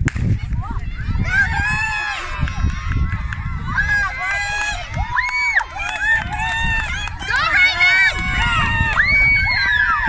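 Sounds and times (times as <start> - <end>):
wind rumbling on microphone: 0.0 - 10.0
children shouting and cheering: 0.4 - 10.0.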